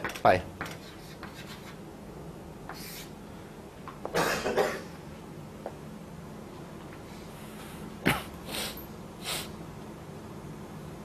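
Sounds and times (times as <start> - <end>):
chalk strokes on blackboard: 0.6 - 1.8, 2.7 - 3.1
person coughing: 4.1 - 5.0, 8.0 - 8.4.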